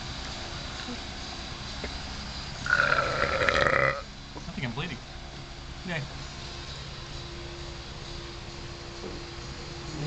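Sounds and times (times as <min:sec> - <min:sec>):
person making croaky vocal noise: 0:02.6 - 0:04.1.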